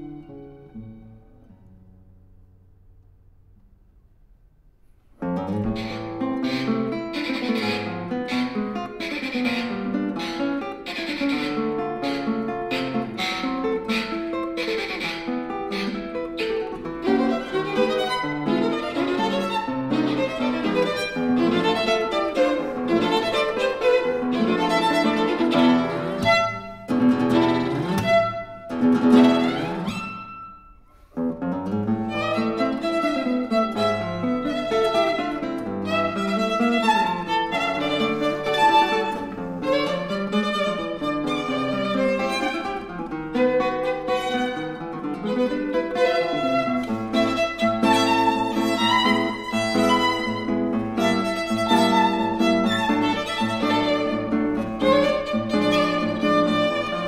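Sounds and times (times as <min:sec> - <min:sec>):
violin melody: 0:00.0 - 0:01.6, 0:05.2 - 0:57.0
plucked classical guitar: 0:00.0 - 0:57.0.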